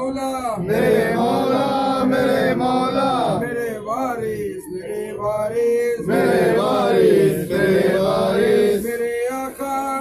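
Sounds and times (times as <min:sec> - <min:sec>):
men chanting together: 0:00.6 - 0:10.0.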